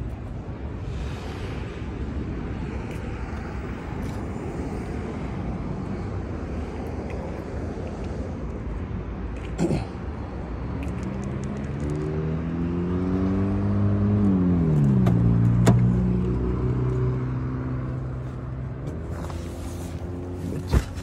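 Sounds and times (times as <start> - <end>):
vehicle passing by: 10.8 - 20.9.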